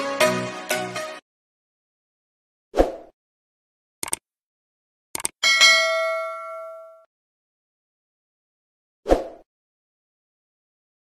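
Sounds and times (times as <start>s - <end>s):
mouse clicks: 4.0s - 4.2s
notification bell ding: 5.4s - 7.1s.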